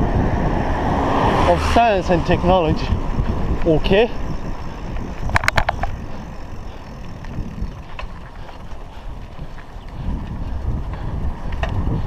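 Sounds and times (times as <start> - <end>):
bicycle tyres rolling on tarmac: 0.0 - 12.0
wind buffeting microphone: 0.0 - 12.0
sharp clicks: 4.9 - 6.0.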